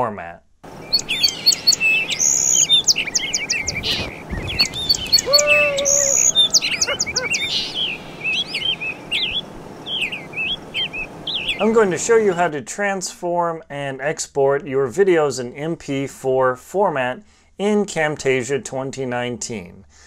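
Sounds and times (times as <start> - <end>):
songbirds chirping: 0.7 - 12.5
lower held bird call: 0.8 - 12.2.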